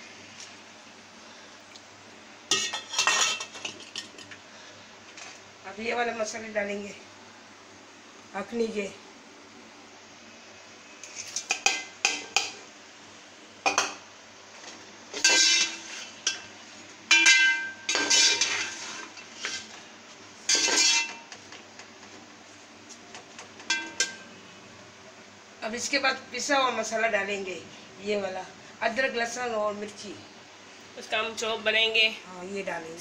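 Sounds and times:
metal spoon clinking on pot: 0:02.5 - 0:03.6, 0:17.1 - 0:18.6, 0:23.7 - 0:24.3.

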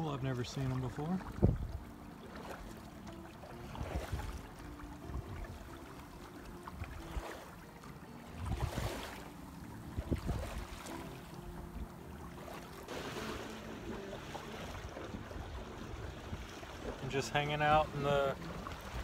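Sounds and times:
water splashing against hull: 0:00.0 - 0:19.0
wind on microphone: 0:01.2 - 0:01.9, 0:03.7 - 0:05.8, 0:08.4 - 0:09.1, 0:09.8 - 0:10.8.

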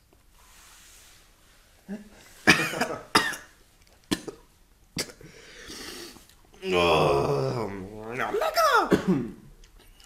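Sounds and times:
person coughing: 0:02.4 - 0:05.3, 0:08.9 - 0:09.5.

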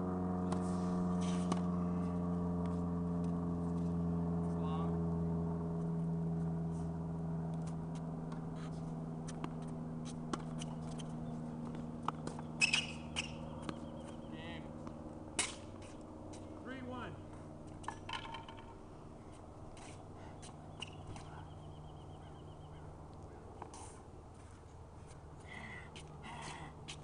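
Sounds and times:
low hum: 0:00.0 - 0:27.0
tennis racket hitting ball: 0:00.5 - 0:01.8, 0:09.2 - 0:13.9, 0:14.8 - 0:16.0.

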